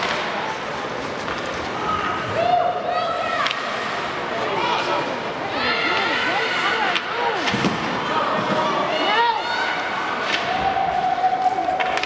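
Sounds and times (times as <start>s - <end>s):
people shouting: 8.2s - 12.0s
hockey stick clacks: 11.4s - 12.0s.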